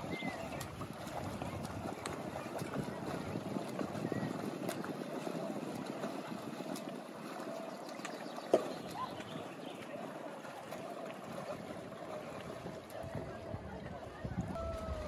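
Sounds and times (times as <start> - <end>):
water splashing around swimmer: 0.0 - 15.0.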